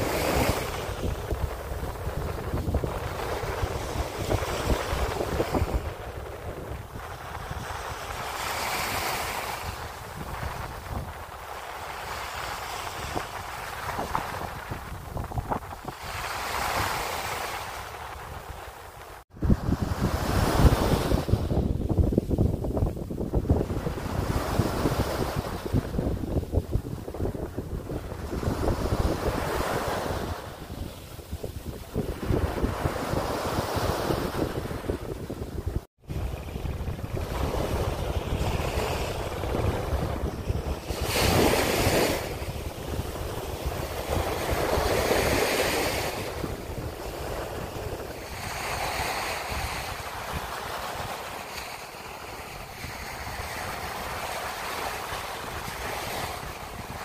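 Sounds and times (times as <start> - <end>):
small waves breaking on beach: 0.0 - 57.0
wind buffeting microphone: 0.0 - 57.0.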